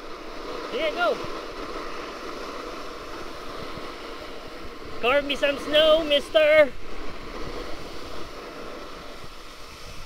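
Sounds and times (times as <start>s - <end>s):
hiss of sliding on snow: 0.0s - 10.0s
wind rushing over microphone: 0.0s - 10.0s.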